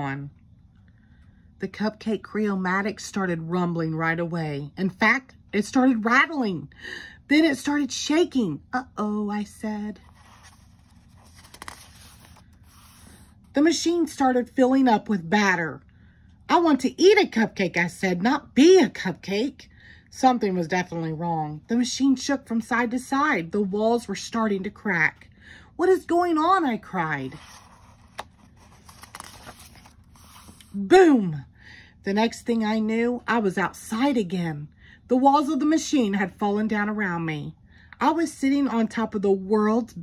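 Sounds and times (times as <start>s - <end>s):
paper page turning: 10.0s - 13.3s, 27.2s - 30.8s
soft page clicks: 27.8s - 30.7s.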